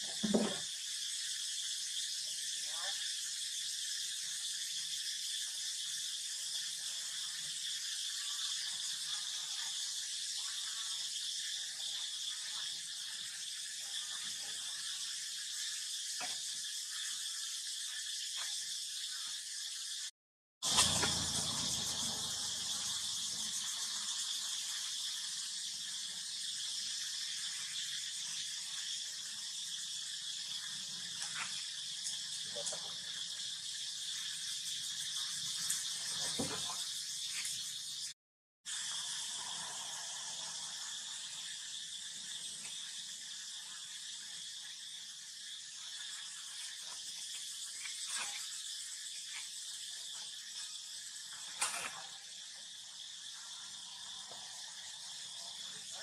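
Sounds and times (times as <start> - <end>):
insects droning: 0.0 - 20.1, 20.7 - 56.0.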